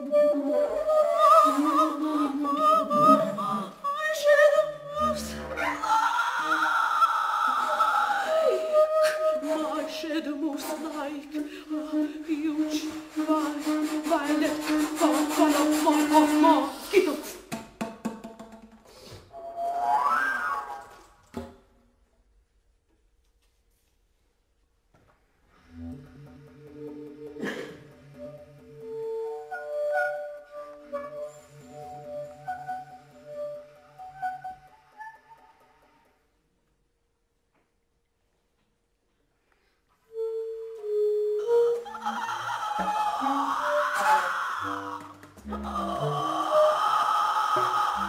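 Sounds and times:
bass flute: 0.0 - 3.6, 4.4 - 9.9, 19.3 - 21.2, 25.6 - 35.6, 40.1 - 48.0
bass clarinet: 0.0 - 9.9, 25.6 - 35.6, 40.1 - 48.0
woman singing: 0.0 - 17.4, 41.4 - 48.0.

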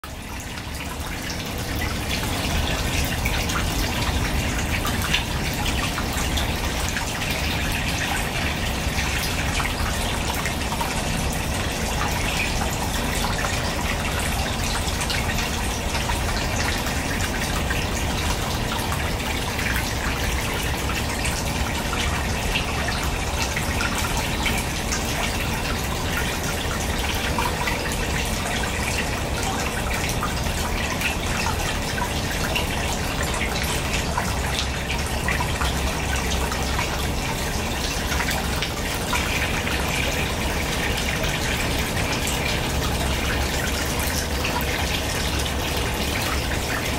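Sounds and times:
water drips: 0.0 - 46.9
water trickling into pond: 0.0 - 46.9.

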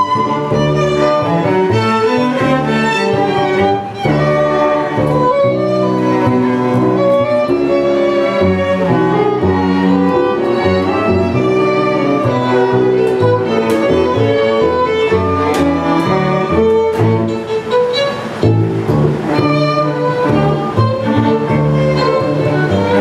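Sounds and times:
string quartet playing: 0.0 - 23.0.

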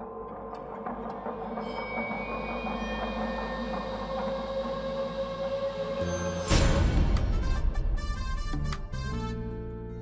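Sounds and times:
droning suspense chord: 0.0 - 8.7.

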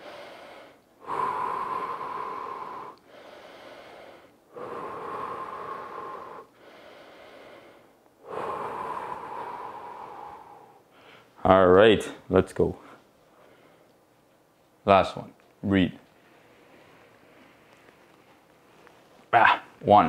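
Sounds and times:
man breathing deeply: 0.0 - 11.4, 12.8 - 14.0.

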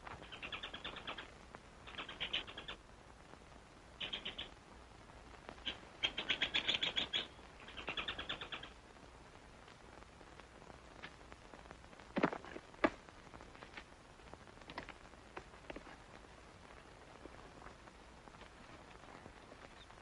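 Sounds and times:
squirrel chattering: 1.9 - 2.8, 4.0 - 4.5, 5.6 - 8.7.

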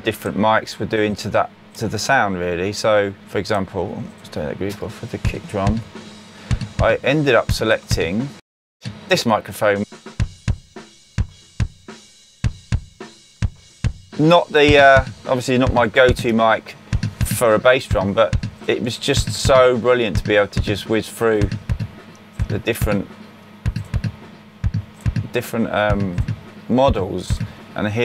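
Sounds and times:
drum kit spill: 5.0 - 28.0
kick drum thuds: 5.3 - 5.9, 6.5 - 8.1, 10.2 - 27.6.

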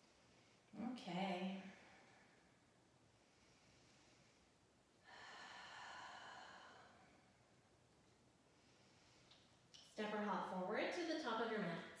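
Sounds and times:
woman breathing: 1.6 - 7.8, 8.4 - 9.7.

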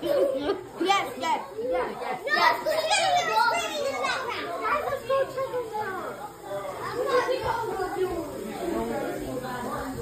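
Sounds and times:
young children talking and calling: 0.0 - 10.0.

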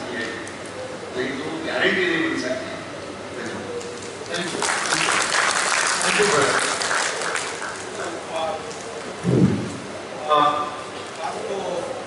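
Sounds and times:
audience applause: 4.4 - 8.3
dull low thump: 9.2 - 9.9.

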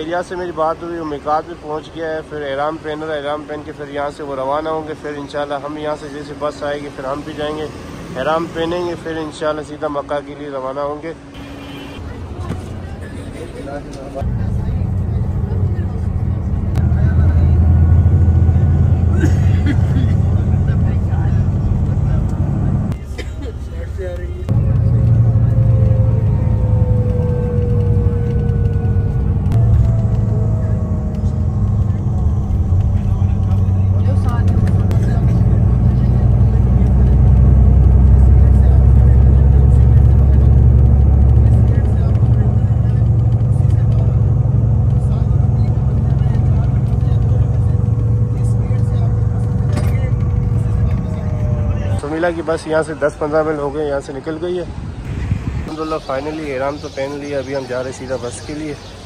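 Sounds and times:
bus engine and tyres rumbling: 0.0 - 59.0.

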